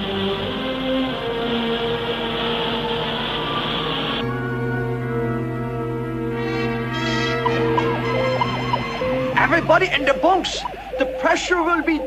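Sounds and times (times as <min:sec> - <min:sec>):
orchestral music with held notes: 0:00.0 - 0:12.0.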